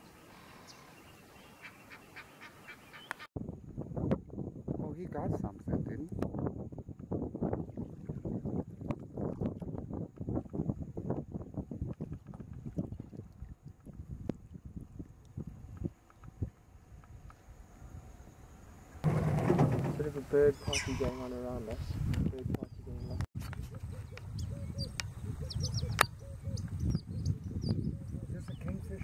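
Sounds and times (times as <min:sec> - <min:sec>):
wind and water rumbling: 0:03.4 - 0:29.0.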